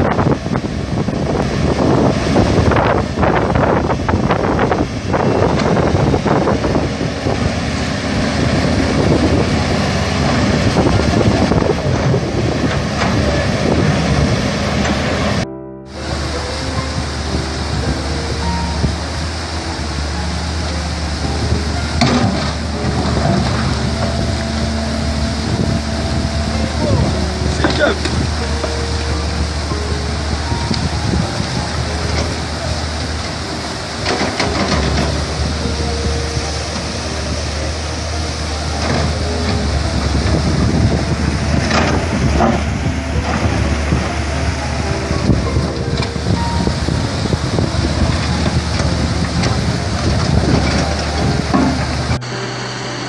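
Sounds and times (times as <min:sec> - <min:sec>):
wind buffeting microphone: 0:00.0 - 0:52.3
excavator engines running: 0:00.0 - 0:53.0
water rushing: 0:00.0 - 0:53.0.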